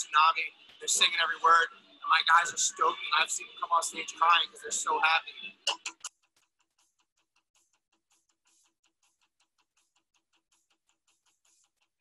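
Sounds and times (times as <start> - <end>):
faint fast ticking: 0.0 - 12.0.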